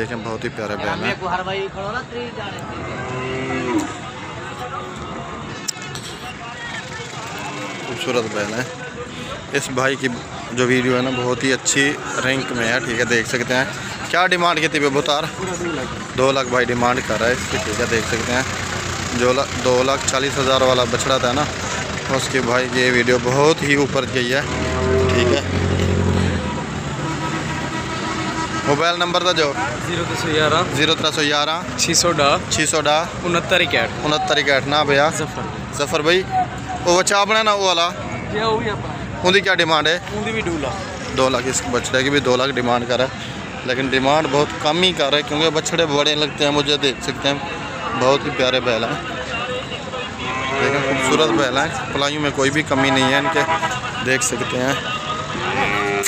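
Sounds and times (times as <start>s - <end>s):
murmur of voices: 0.0s - 56.0s
vehicle engine humming: 0.0s - 56.0s
cow mooing: 2.7s - 4.0s, 24.4s - 26.2s, 50.2s - 51.4s, 55.4s - 56.0s.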